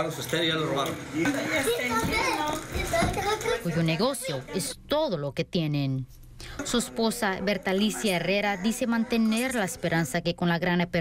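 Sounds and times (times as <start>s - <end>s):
chatter of several voices: 1.2s - 4.8s.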